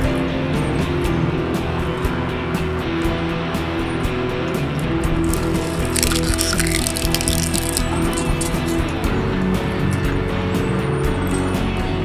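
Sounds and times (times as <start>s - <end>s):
shredder grinding plastic: 5.3s - 8.4s
plastic cracking clicks: 5.3s - 8.7s.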